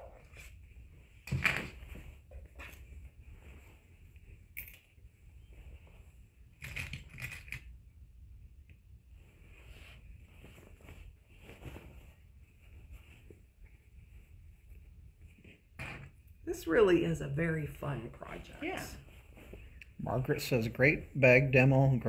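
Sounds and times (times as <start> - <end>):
fabric bag rustling and crinkling: 0.2 - 6.6, 9.1 - 16.4, 17.7 - 20.0.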